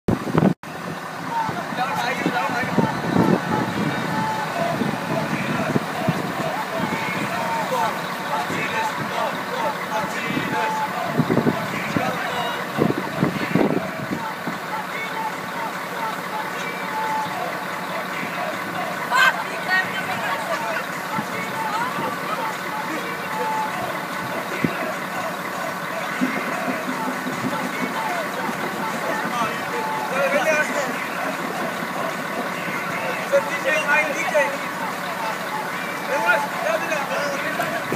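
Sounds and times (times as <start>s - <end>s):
low engine hum: 0.1s - 37.9s
teenagers talking: 0.3s - 37.9s.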